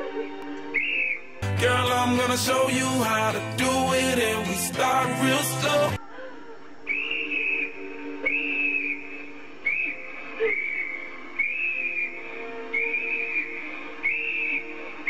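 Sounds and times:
faint sustained music: 0:00.0 - 0:15.0
shrill whistle blasts: 0:06.9 - 0:14.7.

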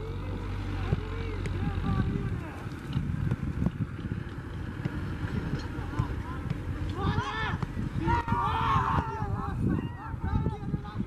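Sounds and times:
distant men calling and talking: 0:00.0 - 0:11.0
wind rumble on microphone: 0:00.0 - 0:11.0.

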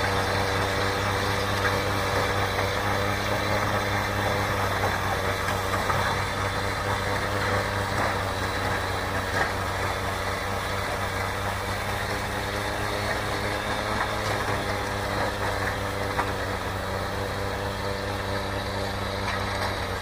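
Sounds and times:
auger throwing snow: 0:00.0 - 0:20.0
electric snow blower motor humming: 0:00.0 - 0:20.0.

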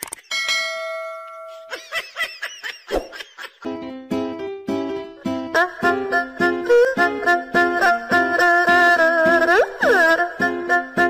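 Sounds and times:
bell-like ding: 0:00.3 - 0:01.8.

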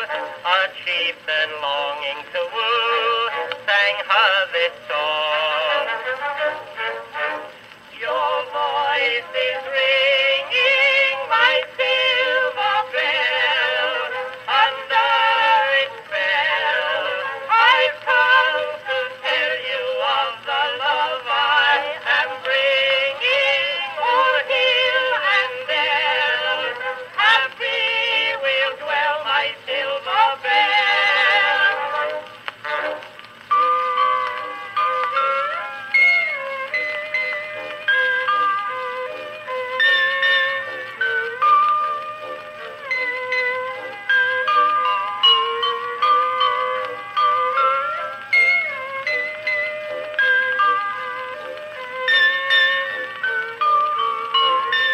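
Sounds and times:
duet song with orchestra: 0:00.0 - 0:54.9.

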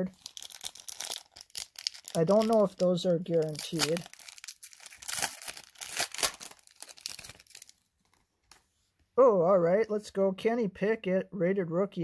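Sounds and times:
foil card pack crinkling: 0:00.0 - 0:07.8.

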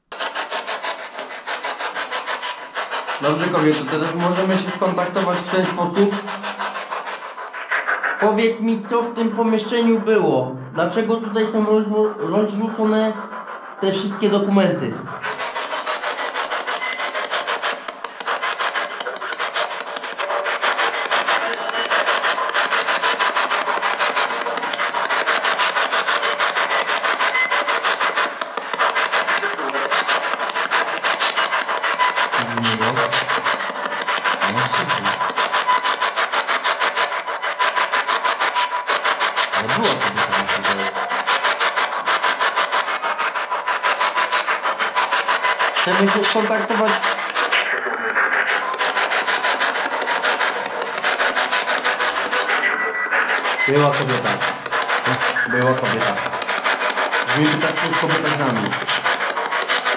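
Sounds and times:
radio static chopping rhythmically: 0:00.0 - 0:59.9
voice-like snatches: 0:00.1 - 0:52.6, 0:53.2 - 0:59.9.

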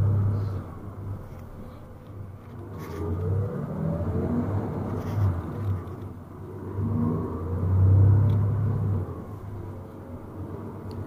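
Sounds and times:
bus engine accelerating: 0:00.0 - 0:01.4, 0:02.2 - 0:11.0.

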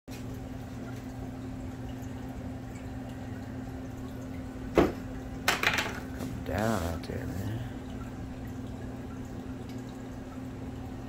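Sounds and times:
pump hum: 0:00.1 - 0:11.0
water trickling: 0:00.1 - 0:11.0.

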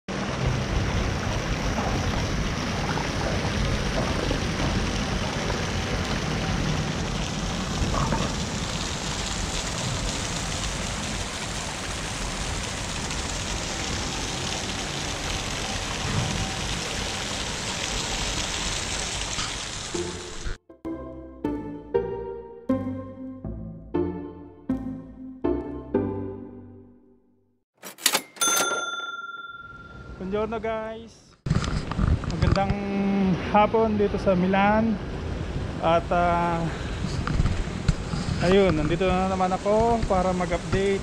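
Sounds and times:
fountain jets splashing into pool: 0:00.1 - 0:20.5, 0:35.8 - 0:41.0.

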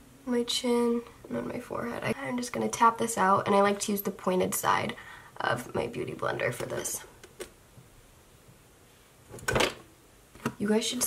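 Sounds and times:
makeup cases clattering on a desk: 0:09.3 - 0:10.6.

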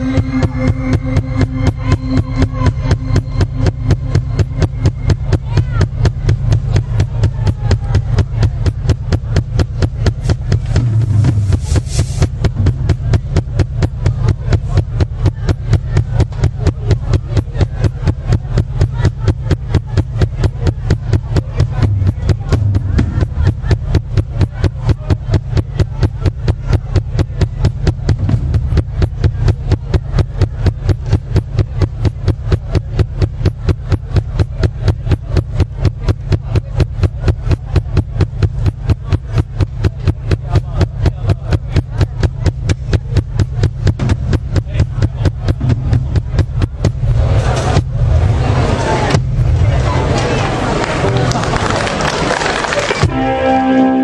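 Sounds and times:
drums fast beat: 0:00.0 - 0:53.4
deep bass line: 0:00.0 - 0:54.0
electric guitar: 0:53.0 - 0:54.0.

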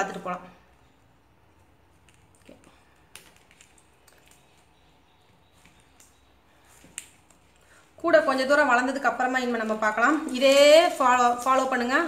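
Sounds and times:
plastic wire rustling: 0:01.5 - 0:12.0.

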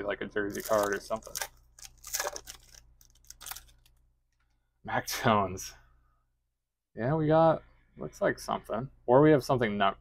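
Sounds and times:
foil wrapper crinkling and tearing: 0:00.5 - 0:04.0.

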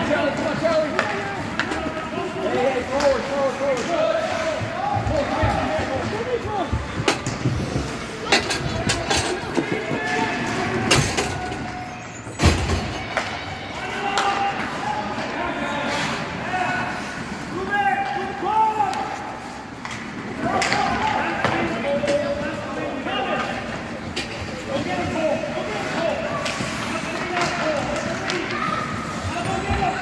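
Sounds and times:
hockey sticks and puck clacking: 0:00.0 - 0:11.7, 0:13.0 - 0:15.4, 0:16.7 - 0:30.0.

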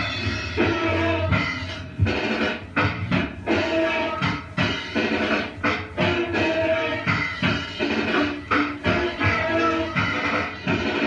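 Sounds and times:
bass: 0:00.0 - 0:11.0.

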